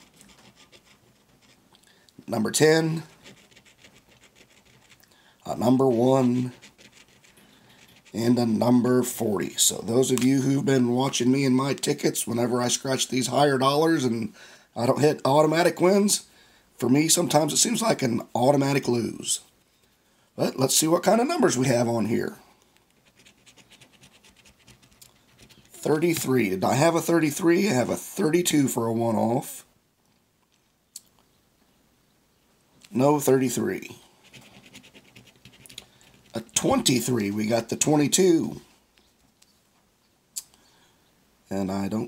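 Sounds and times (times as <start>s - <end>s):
coin scratching lottery ticket: 0.0s - 1.6s, 3.0s - 8.2s, 22.9s - 25.8s, 34.2s - 37.0s.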